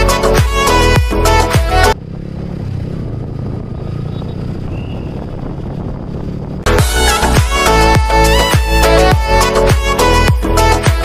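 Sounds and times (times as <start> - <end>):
motorcycle engine rumble: 0.0 - 10.9
road noise: 0.0 - 11.0.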